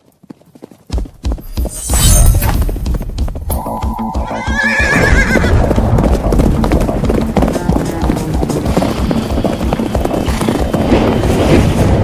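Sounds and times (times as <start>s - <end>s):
horses galloping: 0.0s - 1.8s, 2.5s - 12.0s
horse whinnying: 3.5s - 5.8s.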